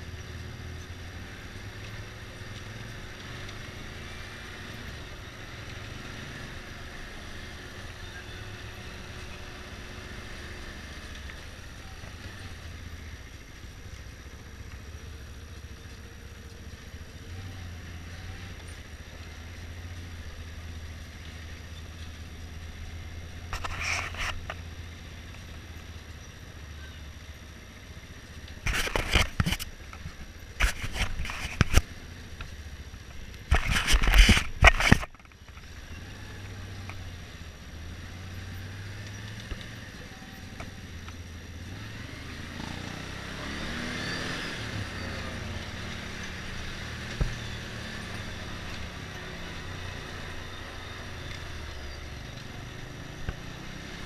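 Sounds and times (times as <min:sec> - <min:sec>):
atv engine running: 0:00.0 - 0:54.0.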